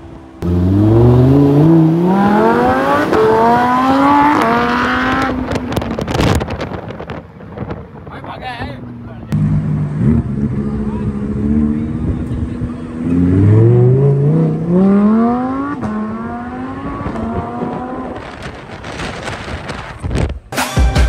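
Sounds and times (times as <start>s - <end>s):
sports car engine accelerating: 0.0s - 8.1s, 8.9s - 19.9s.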